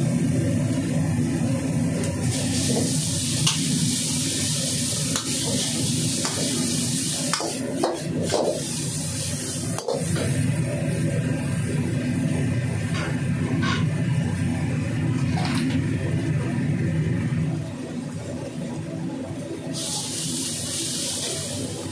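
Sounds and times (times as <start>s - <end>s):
food sizzling in a wok: 0.0s - 11.1s, 19.8s - 21.9s.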